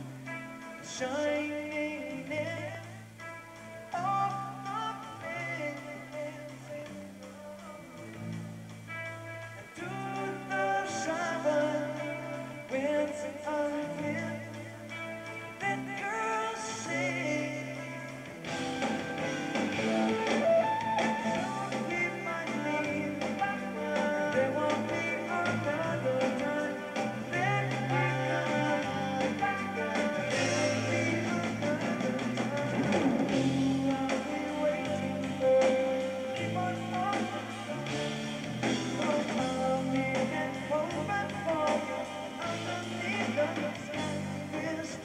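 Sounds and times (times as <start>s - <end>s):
bass: 0.0s - 45.0s
drums: 0.0s - 45.0s
electric guitar melody: 0.0s - 45.0s.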